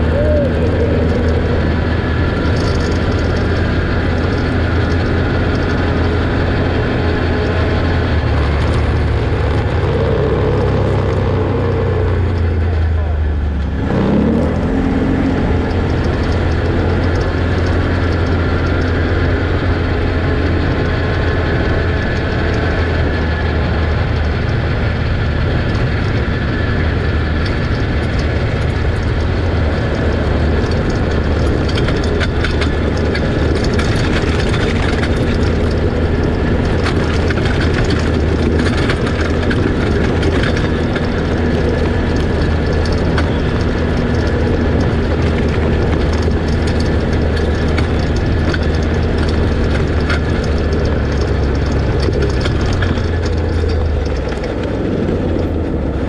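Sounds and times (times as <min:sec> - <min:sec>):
atv engine running: 0:00.0 - 0:56.0
rattles and knocks from trail: 0:00.0 - 0:56.0.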